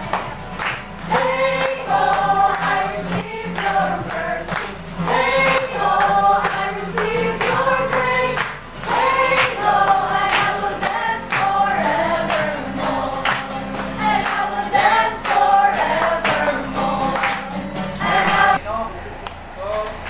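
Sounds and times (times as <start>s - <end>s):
congregation singing: 0.0s - 18.6s
strummed acoustic guitar: 0.0s - 18.6s.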